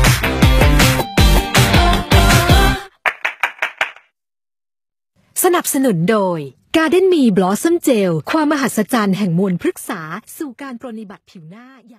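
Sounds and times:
sharp clap-like hits: 3.0 - 4.1.

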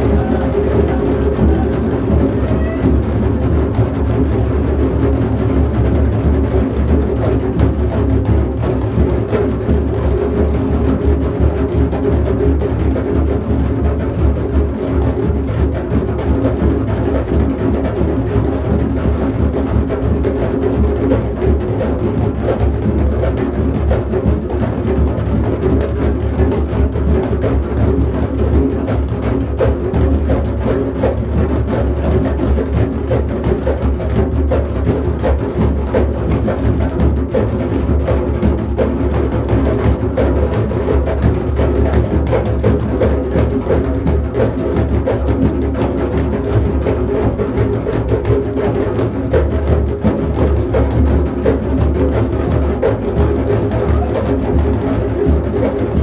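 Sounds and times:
many drums playing: 0.0 - 56.0.

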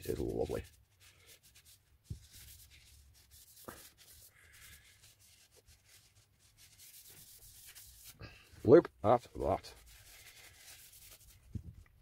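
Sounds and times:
cloth rubbing on wood: 0.0 - 11.8.

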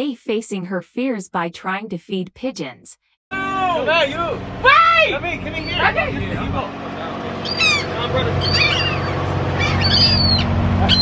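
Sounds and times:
steady low hum: 3.4 - 11.0
seagulls calling: 4.7 - 6.3, 7.1 - 11.0.

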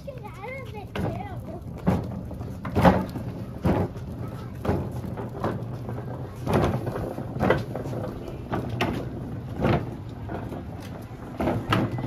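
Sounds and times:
cans and jugs rattling on cart: 0.0 - 12.0
cart wheels rolling on concrete: 0.0 - 12.0.

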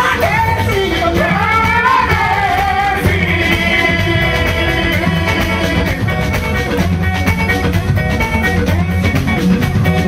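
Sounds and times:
guitars: 0.0 - 10.0
steady drum beat: 0.0 - 10.0
group singing in harmony: 1.3 - 6.6.

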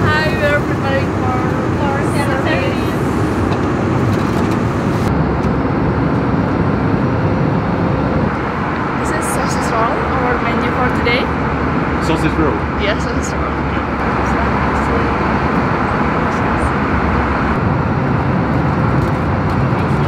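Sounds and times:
airliner cabin noise: 0.0 - 20.0.

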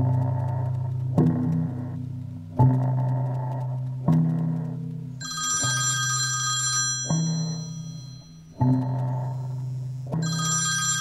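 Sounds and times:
smartphone ringing: 5.2 - 8.9, 10.2 - 11.0.

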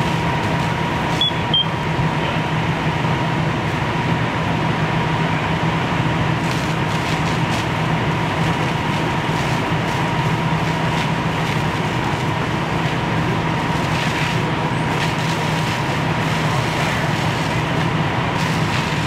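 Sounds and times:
diesel engines and pumps running: 0.0 - 19.0
short high beeps: 1.2 - 1.7.

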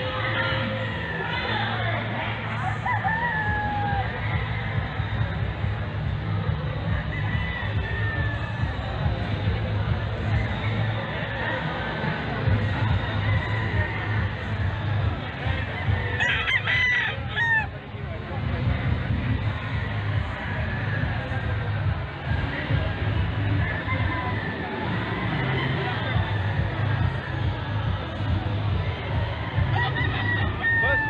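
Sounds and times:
rooster crowing: 16.2 - 17.7, 29.7 - 31.0.

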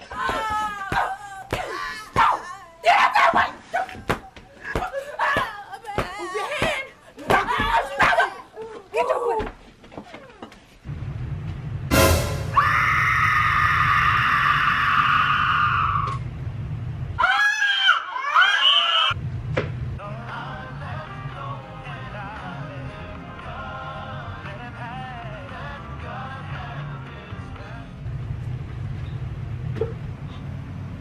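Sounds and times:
woman screaming: 0.0 - 3.9, 12.6 - 16.2, 17.2 - 19.2
child crying and yelping: 0.0 - 9.5.

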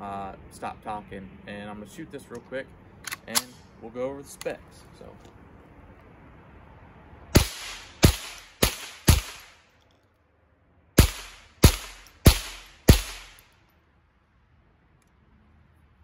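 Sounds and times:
rifle shots with echo: 7.3 - 9.6, 11.0 - 13.4.

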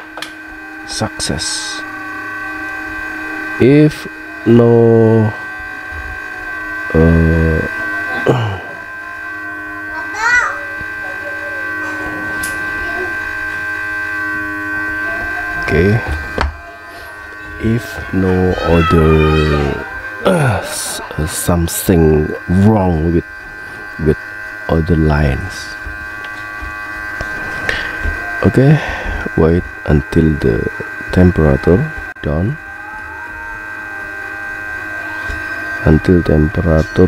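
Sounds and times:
hot-air blower whining: 0.0 - 37.0.

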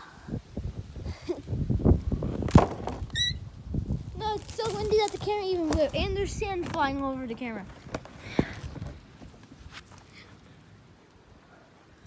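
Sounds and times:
wind buffeting microphone: 0.1 - 9.8
brief high squeak: 3.1 - 3.4.

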